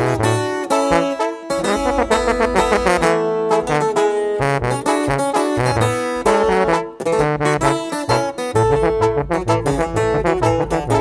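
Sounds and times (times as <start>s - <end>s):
brass band music: 0.0s - 11.0s.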